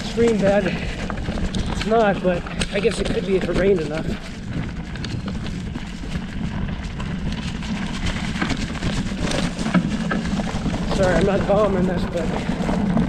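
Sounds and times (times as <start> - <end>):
bike tyres crunching over stones: 0.0 - 13.0
low rumble: 0.0 - 13.0.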